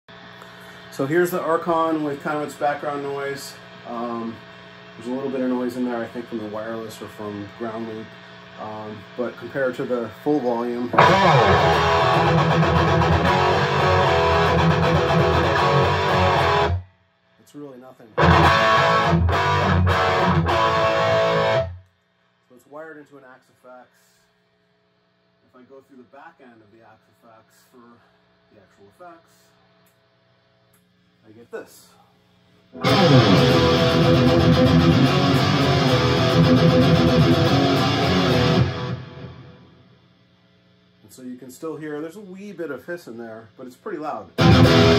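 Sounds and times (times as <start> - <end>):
amplifier background hiss: 0.1 - 44.9
distorted electric guitar chords: 10.8 - 16.8, 18.2 - 21.9, 32.7 - 40.0, 44.4 - 44.9.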